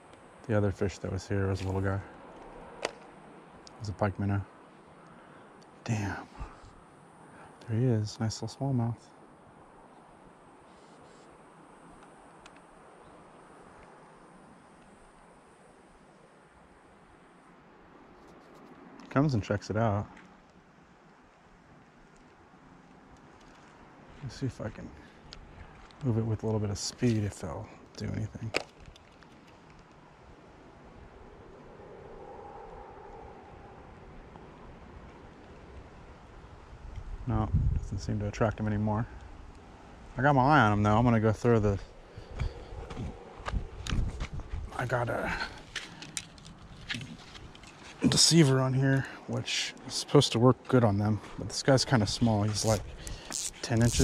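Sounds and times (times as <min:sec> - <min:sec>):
soft even hiss: 0:00.0 - 0:21.2, 0:43.6 - 0:54.0
faint hum: 0:00.0 - 0:54.0
faint outdoor background noise: 0:00.0 - 0:54.0
small ticks: 0:11.9 - 0:12.7, 0:21.8 - 0:23.8, 0:27.8 - 0:30.0, 0:52.6 - 0:54.0.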